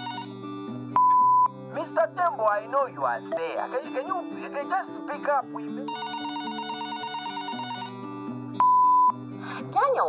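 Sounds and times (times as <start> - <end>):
telephone ringing: 0.0 - 0.4, 5.8 - 9.1
background music: 0.0 - 10.0.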